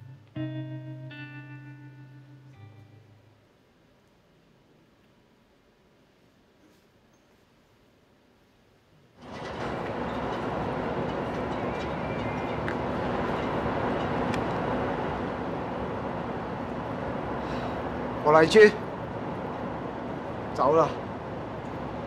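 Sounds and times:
city noise rumble with hiss: 0.0s - 22.0s.

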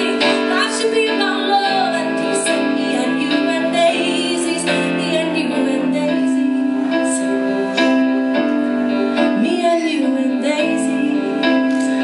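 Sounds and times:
keyboard chords: 0.0s - 12.0s.

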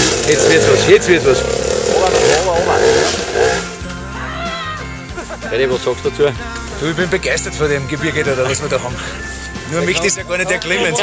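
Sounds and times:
motorcycle engine running: 0.0s - 4.2s
person yelling: 4.1s - 4.9s.

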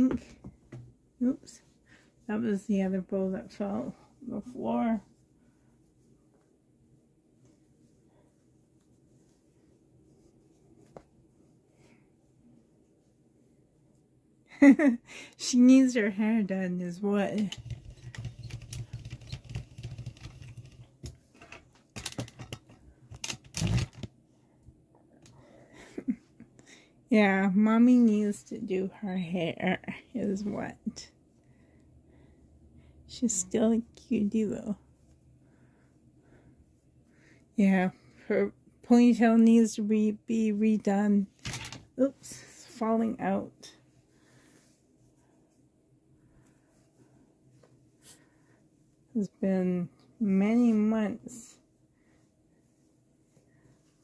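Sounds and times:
hands rustling doll's hair: 0.0s - 14.1s, 17.2s - 24.3s
low steady hum: 0.0s - 54.0s.

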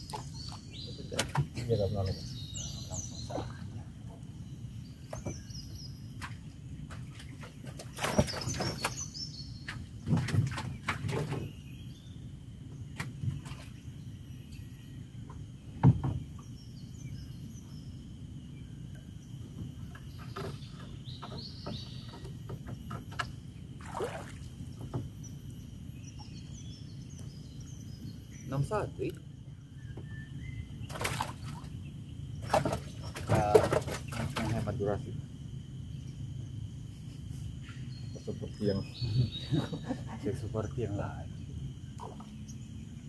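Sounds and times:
birds chirping: 0.0s - 43.0s
knocks on wooden hull: 9.7s - 11.5s, 15.8s - 16.3s.

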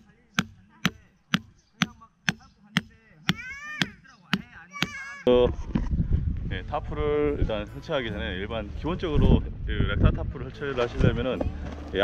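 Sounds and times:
hammer striking metal tent peg: 0.0s - 5.0s.

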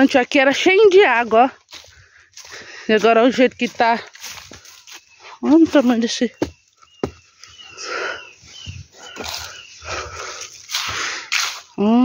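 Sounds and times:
footsteps crunching dry leaves: 0.0s - 12.0s.

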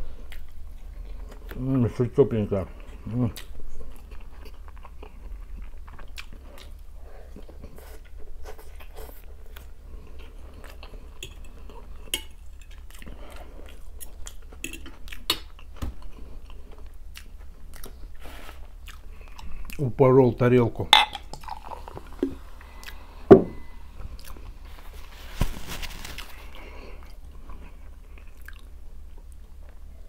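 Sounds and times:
close-up chewing: 0.1s - 1.7s, 2.7s - 19.9s, 24.0s - 24.9s, 26.0s - 29.8s.

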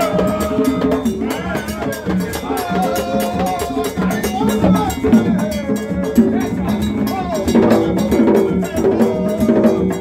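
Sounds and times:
hand drums beaten fast: 0.0s - 10.0s
metallic cowbell-like clang: 0.0s - 10.0s.

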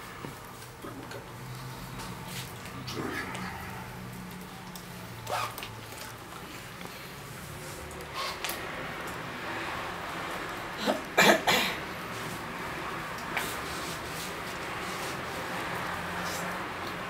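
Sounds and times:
person coughing: 10.8s - 11.8s.

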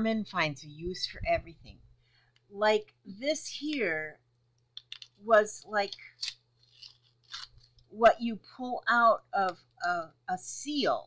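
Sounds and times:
paper rustling: 5.8s - 7.8s.

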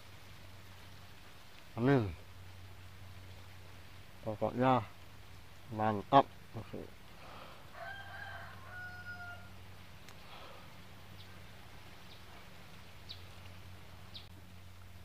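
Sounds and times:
steady low hum: 0.0s - 7.8s, 9.4s - 15.0s
faint rooster crowing: 7.2s - 9.7s.

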